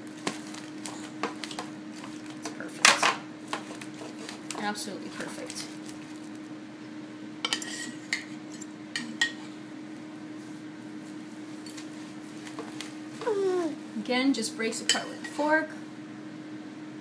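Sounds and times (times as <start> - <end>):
forks scraping foil pan: 3.5 - 4.7.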